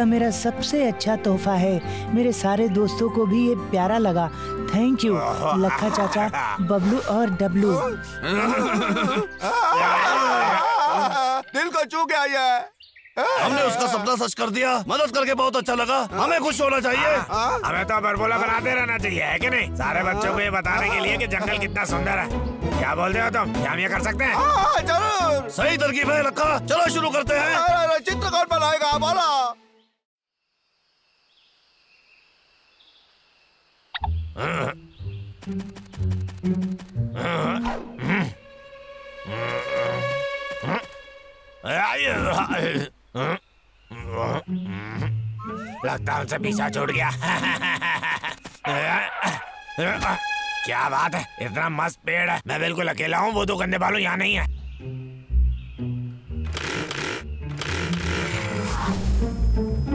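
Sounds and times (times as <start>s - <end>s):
background music: 0.0s - 12.2s, 15.4s - 30.0s, 34.0s - 42.9s, 43.9s - 59.9s
high insect calls: 30.4s - 46.0s
short bird chirps: 34.0s - 36.3s
cartoon chainsaw revving: 56.5s - 58.8s.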